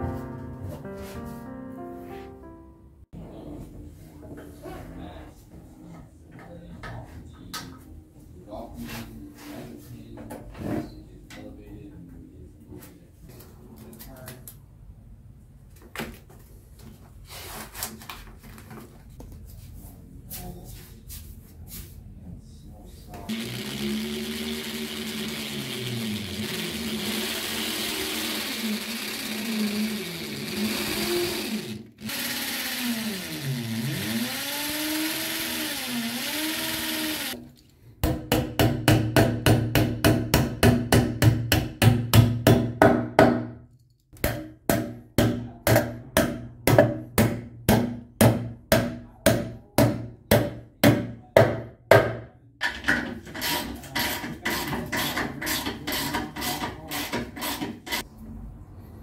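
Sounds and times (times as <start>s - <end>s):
cordless drill boring into wall: 23.3s - 37.4s.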